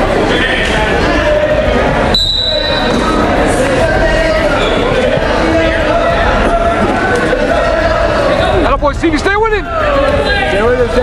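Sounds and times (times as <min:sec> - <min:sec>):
referee's whistle blast: 0:02.1 - 0:03.0.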